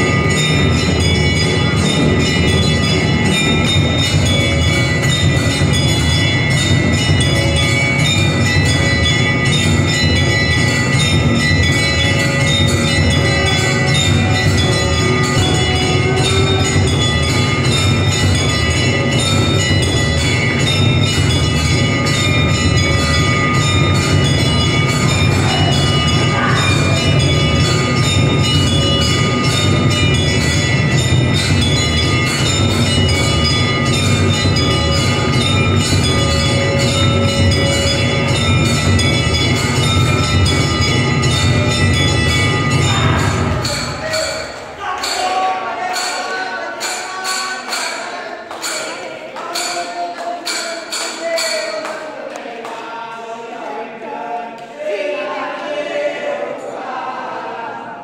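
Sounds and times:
low pounding beat: 0.0 - 44.8
temple bells clanging: 0.0 - 52.4.

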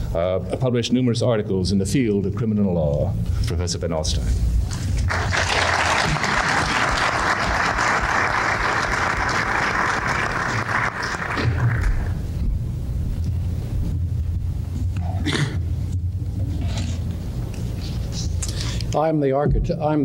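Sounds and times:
audience applauding: 5.1 - 12.2.

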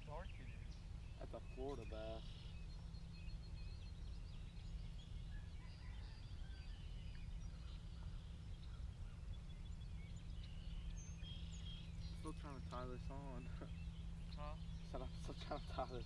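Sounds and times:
birds chirping and trilling: 0.0 - 16.0
steady low rumble: 0.0 - 16.0.

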